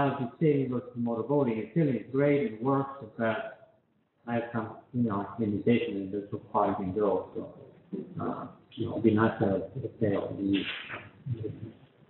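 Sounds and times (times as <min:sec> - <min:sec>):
faint low voiced sounds: 0:00.0 - 0:03.6, 0:04.3 - 0:11.8
man speaking: 0:00.0 - 0:03.6, 0:04.3 - 0:11.7.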